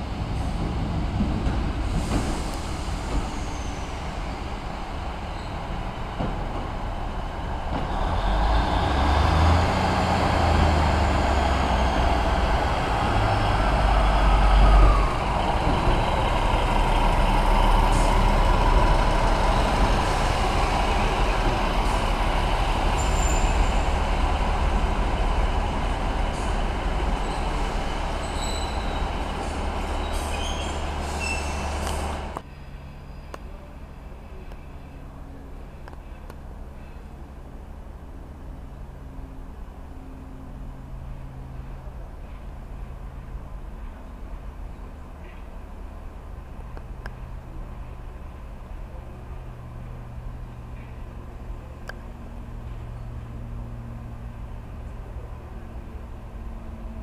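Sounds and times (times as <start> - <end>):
diesel railcar engine passing: 0.0 - 57.0.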